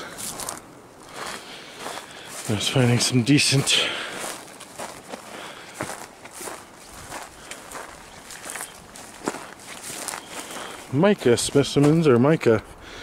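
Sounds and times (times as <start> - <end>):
footsteps crunching on gravelly soil: 0.0 - 12.6.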